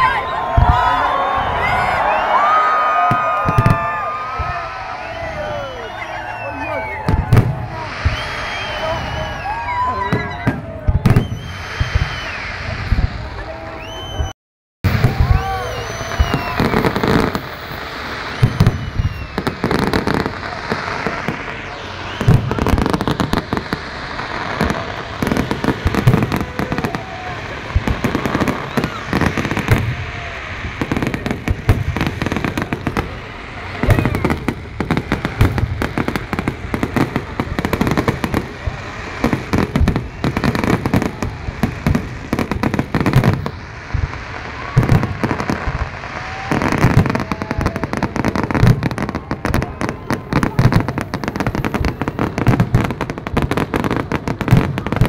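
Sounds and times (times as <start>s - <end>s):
crowd voices: 0.0s - 14.3s, 14.9s - 55.0s
fireworks bangs and crackle: 0.0s - 55.0s.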